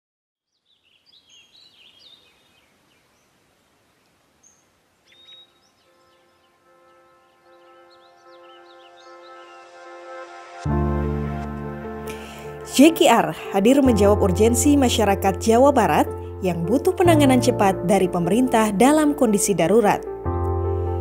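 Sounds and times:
faint bird chirps: 0.4s - 9.7s
steady outdoor hiss: 0.6s - 10.7s
soft held music chord: 5.7s - 10.0s.

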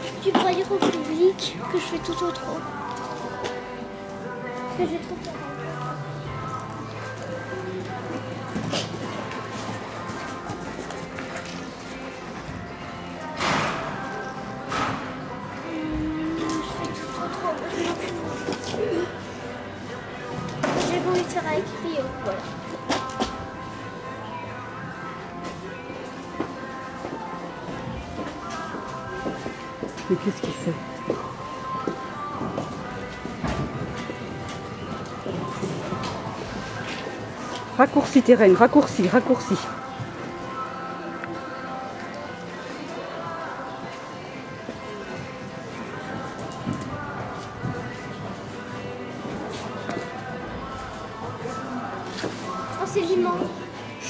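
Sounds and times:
background music: 0.0s - 54.0s
faint voices: 0.0s - 54.0s.

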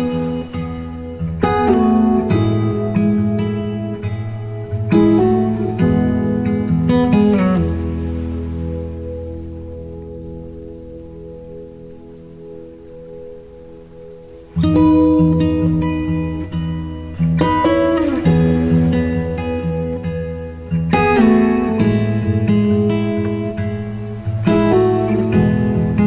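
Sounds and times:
acoustic guitar strumming chords: 0.0s - 26.0s
quiet held tone: 0.0s - 26.0s.

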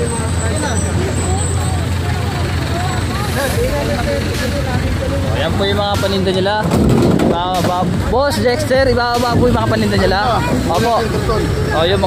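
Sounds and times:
people talking: 0.0s - 12.0s
road traffic rumble: 0.0s - 12.0s.

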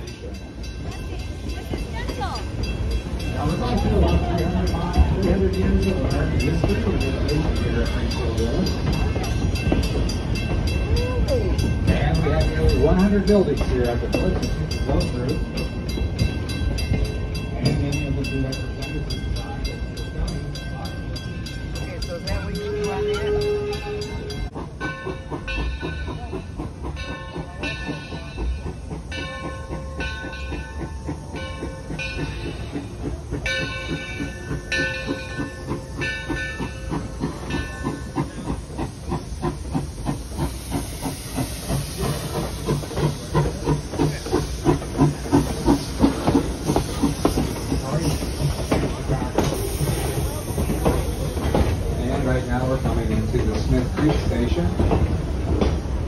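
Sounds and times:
locomotive bell ringing: 0.0s - 55.3s
steam locomotive chuffing and hissing: 0.0s - 56.0s.

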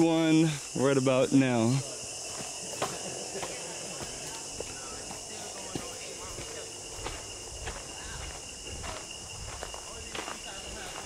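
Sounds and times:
forest insects droning: 0.0s - 11.0s
footsteps on dirt trail: 1.8s - 11.0s.

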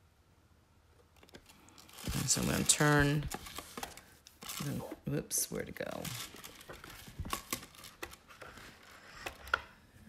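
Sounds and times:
paper rustling and tapping: 2.0s - 4.6s, 6.1s - 9.7s.

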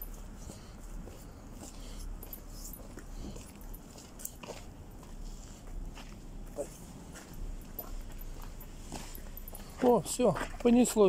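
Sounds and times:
background noise: 0.0s - 11.0s
faint dog sounds: 6.5s - 8.7s.

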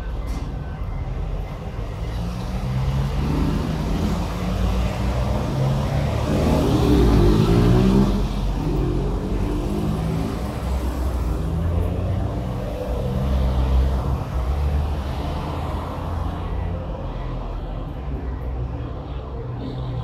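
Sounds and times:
vehicle engine passing by: 2.4s - 15.6s.

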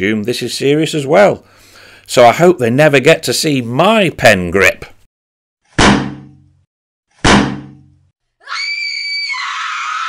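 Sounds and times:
high-pitched shriek: 8.4s - 10.0s.

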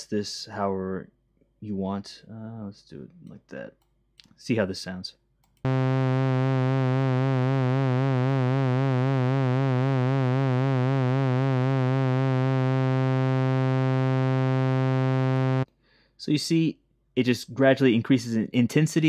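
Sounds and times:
synthesizer note with vibrato: 5.7s - 15.7s.

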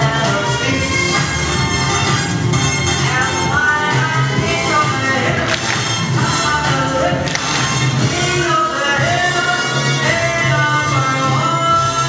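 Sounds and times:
short sharp cracks: 5.3s - 6.2s, 7.2s - 8.0s.

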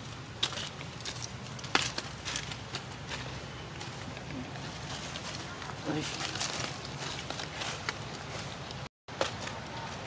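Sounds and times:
rustling in dry leaves: 0.0s - 10.0s.

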